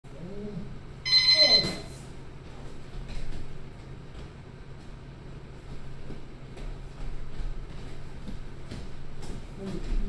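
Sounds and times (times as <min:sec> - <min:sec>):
buzzing timer beep: 0:01.0 - 0:01.9.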